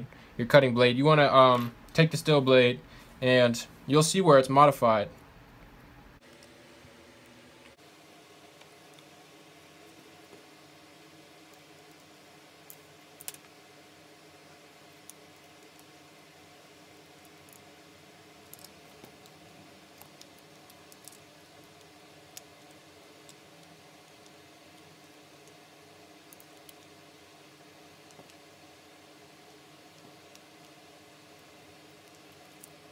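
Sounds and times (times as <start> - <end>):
faint steady hum: 0.0 - 32.9.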